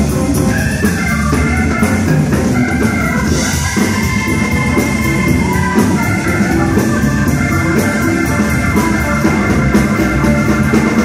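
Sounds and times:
drums: 0:00.0 - 0:11.0
electric guitar: 0:00.0 - 0:11.0
organ chords: 0:00.0 - 0:11.0.

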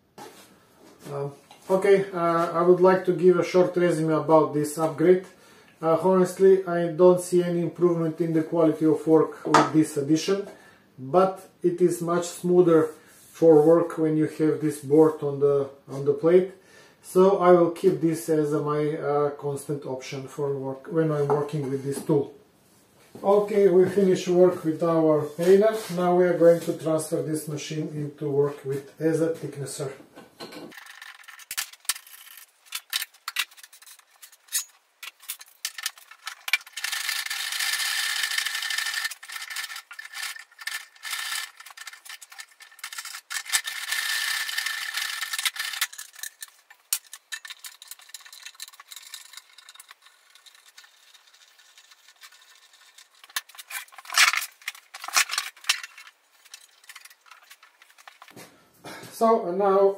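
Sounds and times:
metal scraping: 0:30.7 - 0:58.4
clicks knocks and rattles: 0:38.8 - 0:58.4.

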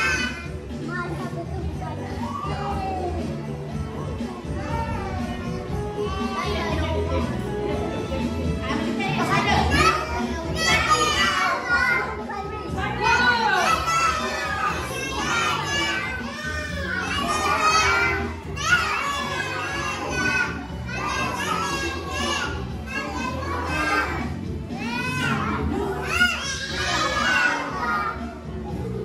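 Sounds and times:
children singing: 0:00.0 - 0:00.5, 0:09.1 - 0:29.0
recorded backing music: 0:00.0 - 0:29.0.

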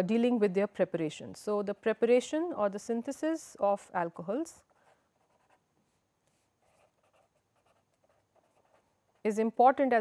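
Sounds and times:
marker writing on paper: 0:04.8 - 0:05.6, 0:06.3 - 0:08.9.

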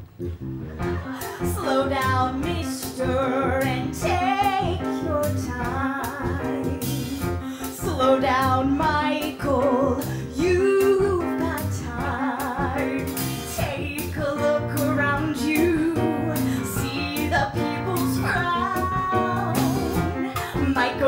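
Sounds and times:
small band with guitar and cello: 0:00.0 - 0:21.0
woman singing into a microphone: 0:01.1 - 0:21.0.

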